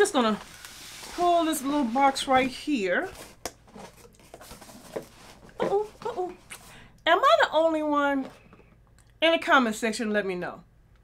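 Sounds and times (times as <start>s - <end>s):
objects moved on a desk: 3.1s - 6.7s.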